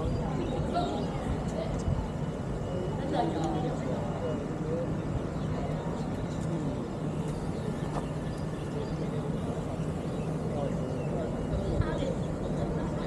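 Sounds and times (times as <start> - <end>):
faint voices: 0.0 - 13.0
low outdoor rumble: 0.0 - 13.0.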